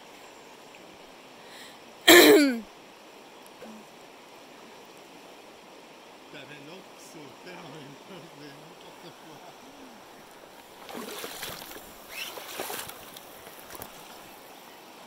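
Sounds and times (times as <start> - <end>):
river rushing over stones: 0.9 - 15.0.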